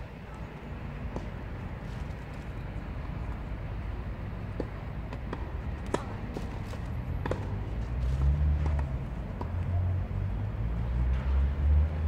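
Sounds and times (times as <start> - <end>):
tennis balls struck by racquets: 0.1 - 9.9.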